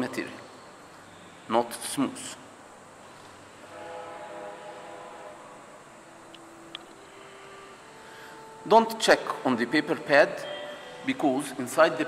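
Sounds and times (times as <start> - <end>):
faint held tones: 5.8 - 11.4.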